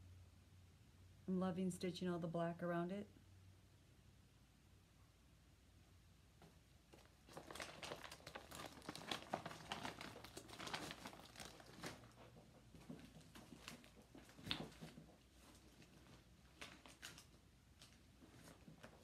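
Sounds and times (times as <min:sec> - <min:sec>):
fabric bags rustling and crinkling: 0:06.9 - 0:19.0.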